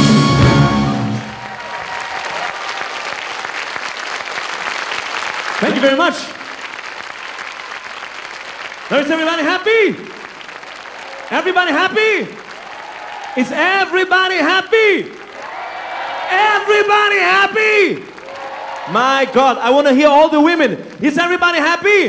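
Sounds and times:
audience applauding: 0:00.3 - 0:22.0
man speaking over microphone: 0:05.6 - 0:06.4, 0:08.9 - 0:10.2, 0:11.3 - 0:12.4, 0:13.4 - 0:15.2, 0:16.3 - 0:18.1, 0:18.9 - 0:22.0.

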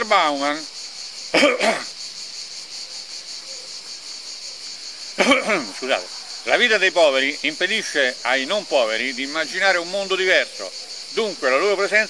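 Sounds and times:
insects shrilling: 0:00.0 - 0:12.0
man coughing: 0:01.4 - 0:01.9, 0:05.2 - 0:05.8
man's voice: 0:05.2 - 0:12.0.

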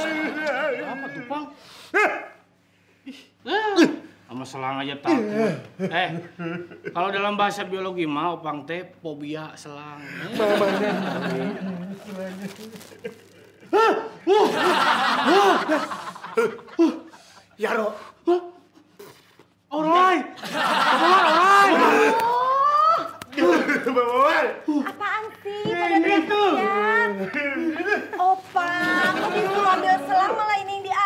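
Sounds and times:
man sobbing loudly: 0:05.1 - 0:05.7, 0:12.5 - 0:17.4
woman talking: 0:24.9 - 0:27.2, 0:28.2 - 0:31.0.

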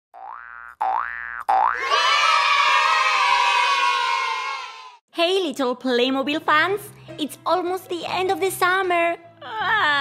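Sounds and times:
cartoon boings rising in pitch: 0:00.2 - 0:01.9.

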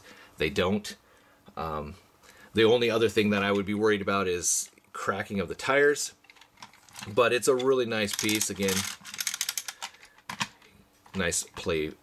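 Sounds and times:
plastic toy truck clicking and rattling: 0:06.2 - 0:11.3.

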